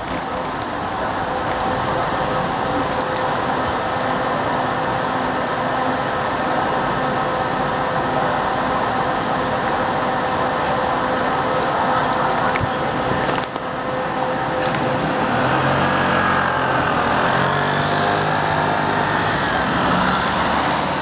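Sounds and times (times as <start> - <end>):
bicycle rolling: 0.0 - 5.0.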